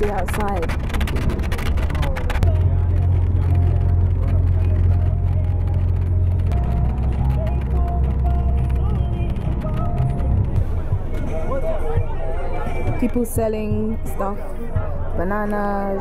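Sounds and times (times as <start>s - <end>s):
bus engine droning: 0.0s - 16.0s.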